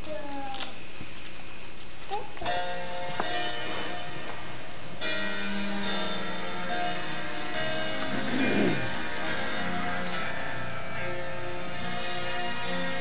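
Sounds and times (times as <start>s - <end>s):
sustained chords: 3.7s - 13.0s.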